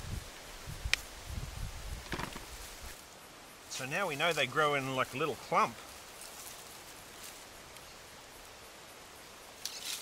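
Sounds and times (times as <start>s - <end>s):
steady outdoor hiss: 0.0s - 10.0s
hands rummaging in soil: 6.1s - 7.5s.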